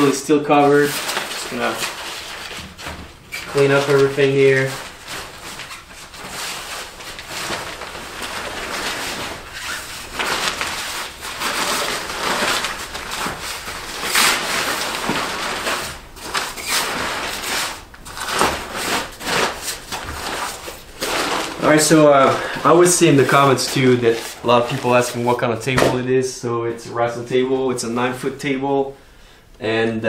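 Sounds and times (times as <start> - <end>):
cloth cover rustling and crinkling: 0.0 - 26.0.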